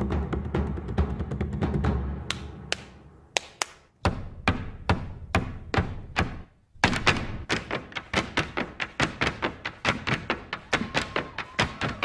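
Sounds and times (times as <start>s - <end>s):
drum-heavy music with timpani: 0.0s - 2.6s
hard shoe dance taps: 4.0s - 12.0s.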